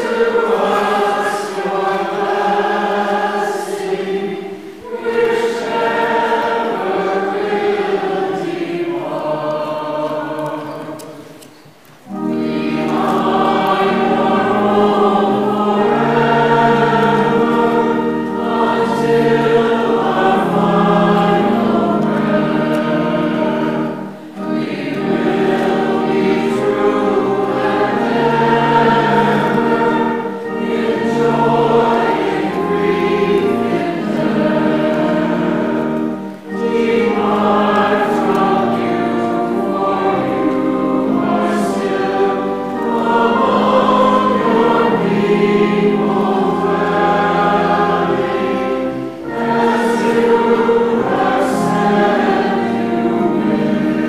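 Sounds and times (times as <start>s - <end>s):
choir singing a hymn: 0.0s - 54.0s
organ accompaniment: 0.0s - 54.0s.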